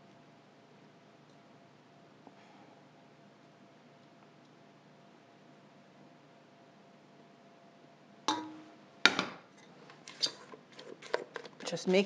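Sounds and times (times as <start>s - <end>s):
metal clanks on steel bowl: 8.3s - 8.7s.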